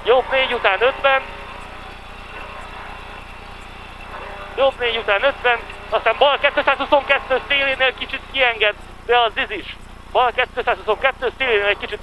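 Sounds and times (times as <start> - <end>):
car engine running at speed: 0.0 - 9.1.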